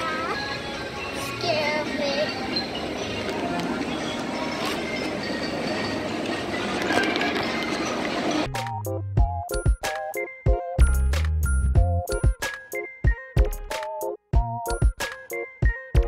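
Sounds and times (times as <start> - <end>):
outdoor background noise: 0.0 - 10.6
clearly pitched music notes: 8.5 - 16.0
music: 8.5 - 16.0.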